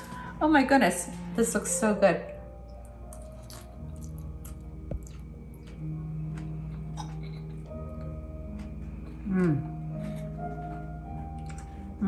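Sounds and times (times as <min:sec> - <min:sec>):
soft background music: 0:00.0 - 0:12.0
person chewing crunchy salad: 0:02.9 - 0:11.9.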